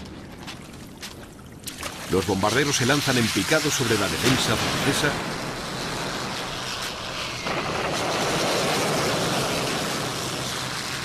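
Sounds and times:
propeller engines droning: 0:00.0 - 0:11.0.

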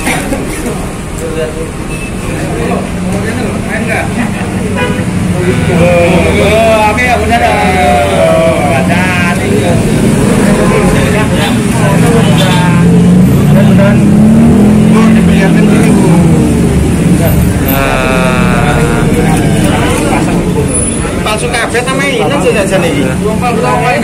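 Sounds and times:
voices talking: 0:00.0 - 0:24.0
engine running: 0:02.6 - 0:21.3.

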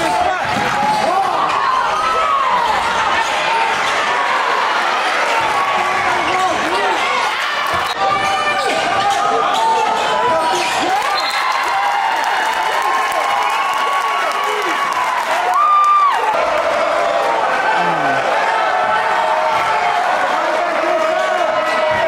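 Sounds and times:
crowd chatter and shouts: 0:00.0 - 0:22.0.

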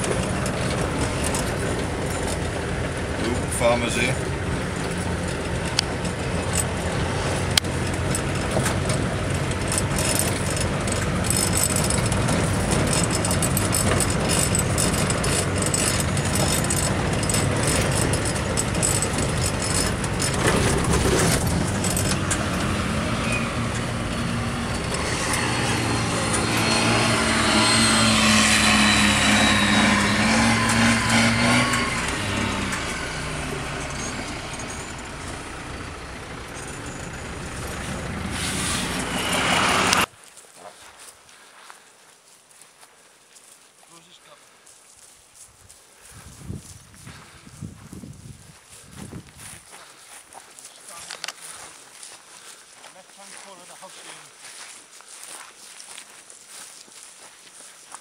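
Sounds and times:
vehicle engine on dirt track: 0:00.0 - 0:40.1, 0:46.2 - 0:58.0
tracked vehicle engine and tracks: 0:00.0 - 0:40.2, 0:46.1 - 0:58.0.

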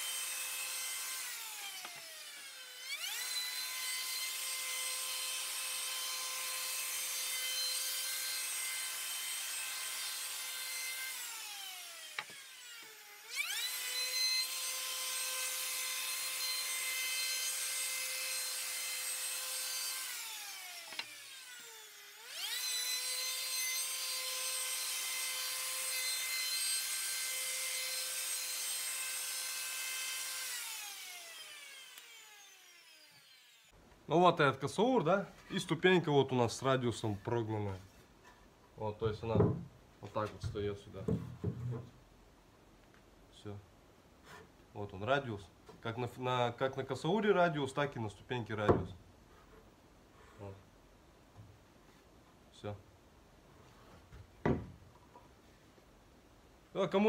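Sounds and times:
router motor whining while cutting wood: 0:00.0 - 0:33.7.

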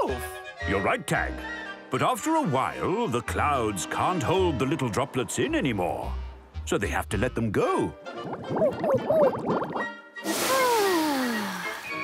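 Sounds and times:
cartoon falling whistle with hiss: 0:10.2 - 0:12.0
sigh-like vocal sounds: 0:10.4 - 0:11.7.

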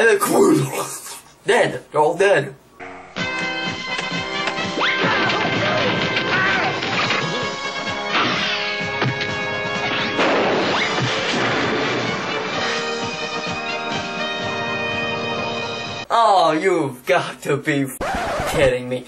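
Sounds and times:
film soundtrack music: 0:02.8 - 0:16.1
crash and smash sound effects: 0:09.9 - 0:12.5.

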